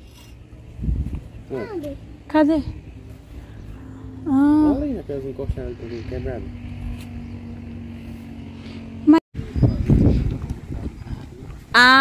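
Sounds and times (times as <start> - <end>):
distant motor droning: 0.0 - 11.8.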